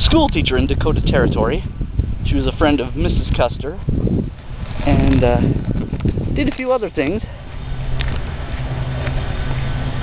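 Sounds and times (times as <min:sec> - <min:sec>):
low engine hum: 0:00.6 - 0:10.0.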